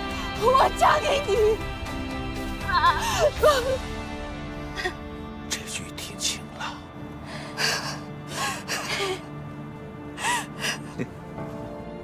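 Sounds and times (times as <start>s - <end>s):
soft background music: 0.0s - 12.0s
woman sobbing: 2.7s - 3.9s, 4.6s - 5.2s, 7.4s - 11.2s.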